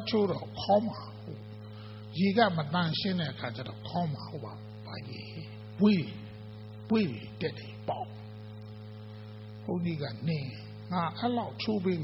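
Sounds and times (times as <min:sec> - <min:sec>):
man speaking into microphone: 0:00.0 - 0:08.3, 0:09.6 - 0:12.0
electrical mains hum: 0:00.0 - 0:12.0.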